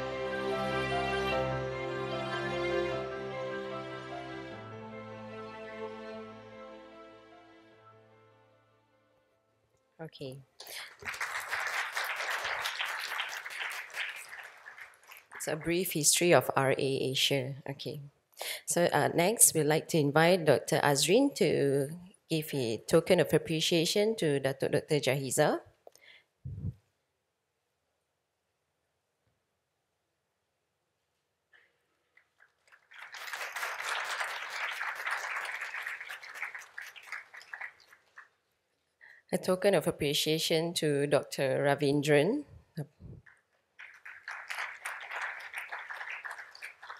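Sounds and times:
audience applauding: 0:10.6 - 0:16.0, 0:32.2 - 0:38.4, 0:43.2 - 0:46.9.

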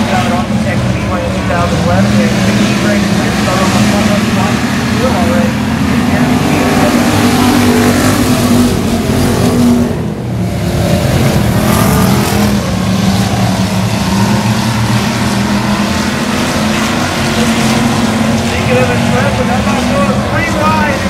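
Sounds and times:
race car engines: 0:00.0 - 0:21.0.

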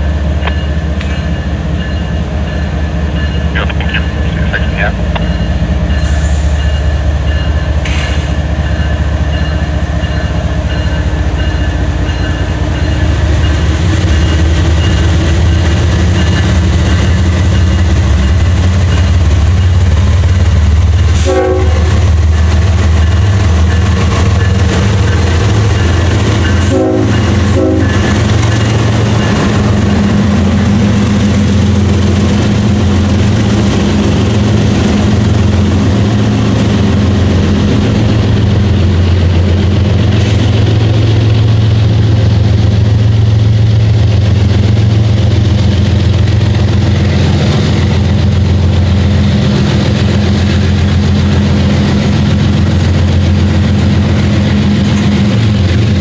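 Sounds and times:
diesel locomotive engines rumbling: 0:00.0 - 0:56.0
train knocks: 0:00.0 - 0:56.0.

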